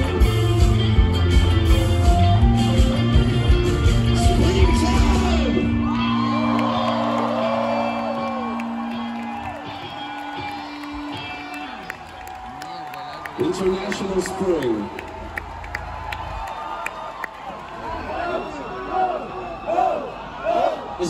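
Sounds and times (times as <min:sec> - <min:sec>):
live rock band: 0:00.0 - 0:12.4
crowd cheering and whooping: 0:04.1 - 0:21.0.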